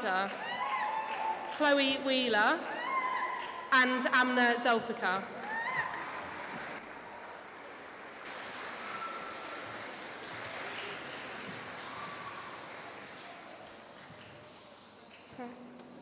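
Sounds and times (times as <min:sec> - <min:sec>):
audience applauding: 0:00.3 - 0:01.6, 0:05.4 - 0:15.3.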